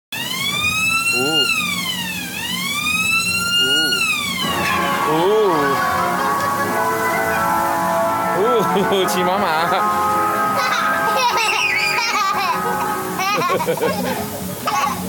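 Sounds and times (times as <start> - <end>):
siren-like whistle: 0.2 - 8.8, 9.9 - 12.8
carousel music: 4.0 - 15.0.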